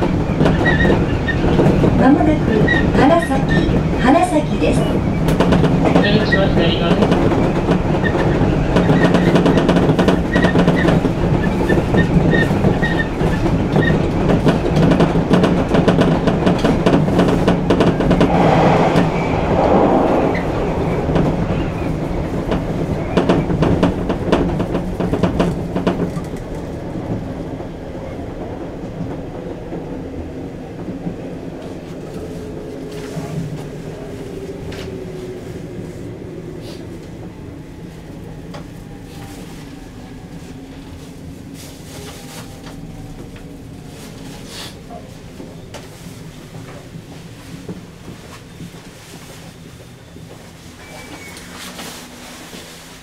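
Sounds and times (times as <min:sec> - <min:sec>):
train wheels clicking over rail joints: 0:00.0 - 0:19.1, 0:21.0 - 0:27.3
train low hum: 0:00.0 - 0:53.0.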